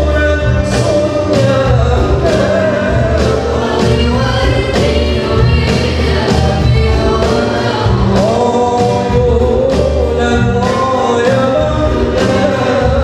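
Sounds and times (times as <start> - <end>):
band with keyboards guitars drums: 0.0 - 13.0.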